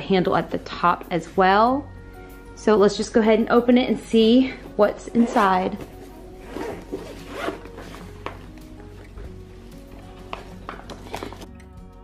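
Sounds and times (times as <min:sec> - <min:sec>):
faint background music: 0:00.0 - 0:12.0
zipper being pulled open: 0:05.1 - 0:08.4.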